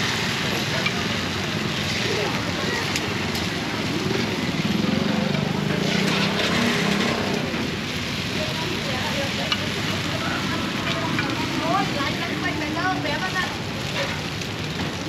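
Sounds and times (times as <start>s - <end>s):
steady traffic noise: 0.0s - 15.0s
motor vehicle passing: 1.8s - 13.6s.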